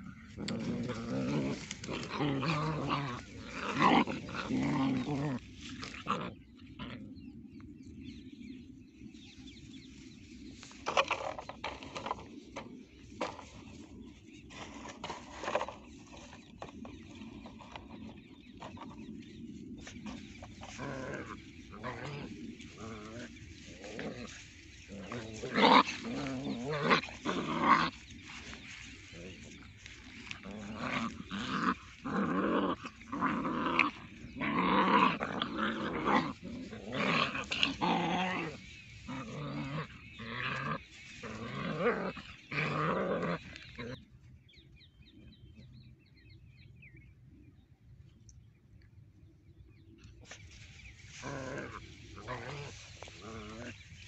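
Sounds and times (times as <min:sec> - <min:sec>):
puppies growling: 0:00.0 - 0:08.1, 0:10.6 - 0:44.4, 0:50.2 - 0:54.0.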